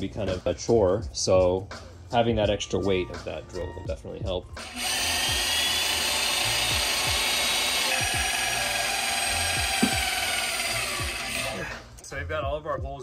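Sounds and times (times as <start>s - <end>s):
drill boring through steel: 4.6s - 11.8s.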